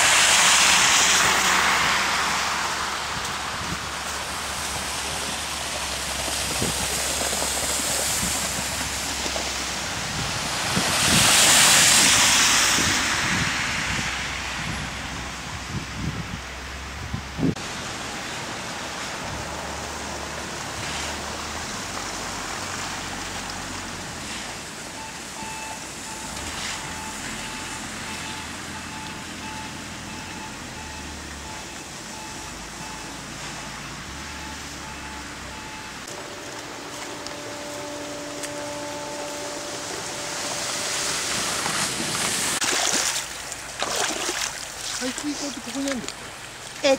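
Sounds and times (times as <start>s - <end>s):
tyres hissing through slush: 0.0s - 14.6s
vehicle noise: 0.0s - 46.9s.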